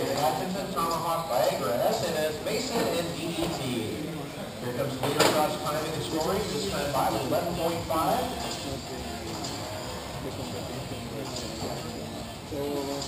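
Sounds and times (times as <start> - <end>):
indistinct voices in echoing hall: 0.0 - 13.0.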